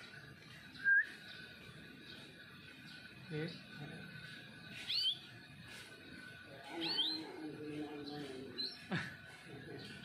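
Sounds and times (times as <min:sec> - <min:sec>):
canary chirping: 0:00.0 - 0:10.0.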